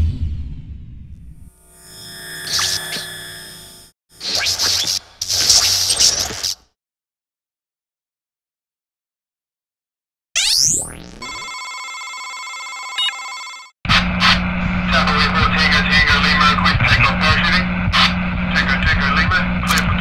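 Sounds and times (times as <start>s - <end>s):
low hum: 13.9s - 18.6s.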